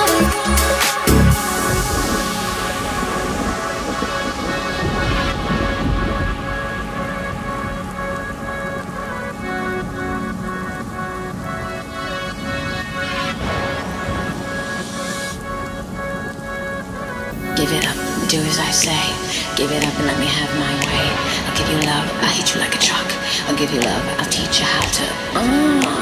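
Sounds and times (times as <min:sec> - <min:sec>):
bright rush of noise: 0:00.0 - 0:23.8
held synth chords: 0:00.0 - 0:26.0
rumbling rain-like noise: 0:00.0 - 0:26.0.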